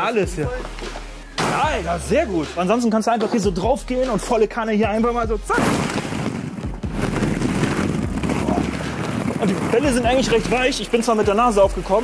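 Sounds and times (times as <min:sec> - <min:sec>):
plastic balls clattering: 0:05.7 - 0:11.3.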